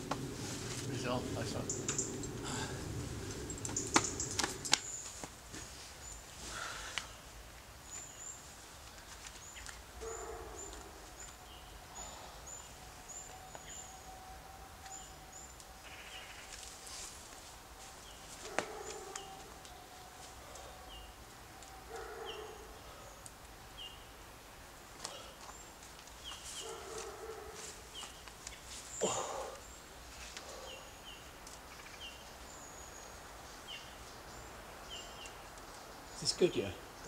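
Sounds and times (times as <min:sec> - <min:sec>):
birds chirping: 0:00.0 - 0:08.6, 0:09.4 - 0:24.2, 0:24.8 - 0:37.0.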